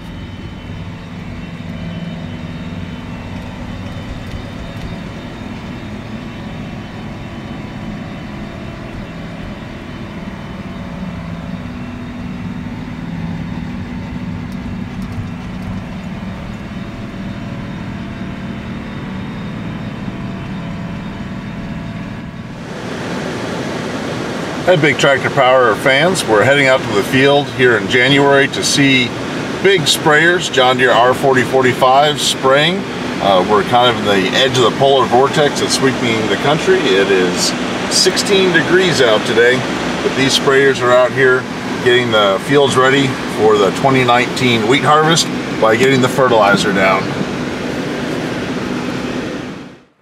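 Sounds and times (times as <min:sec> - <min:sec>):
diesel engine drone: 0:00.0 - 0:50.0
even rushing noise: 0:22.1 - 0:49.8.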